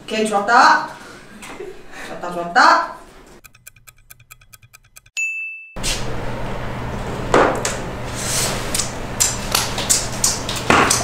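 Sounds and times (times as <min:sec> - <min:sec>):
fast clock ticking: 0:03.4 - 0:05.1
bright ding: 0:03.5 - 0:05.8.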